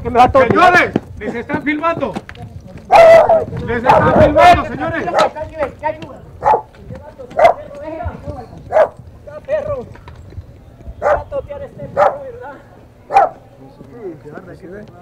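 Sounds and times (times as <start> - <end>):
dog barking: 2.9 - 4.2, 5.1 - 5.4, 6.4 - 6.7, 7.3 - 7.7, 8.7 - 9.0, 11.0 - 11.3, 12.0 - 12.3, 13.1 - 13.4.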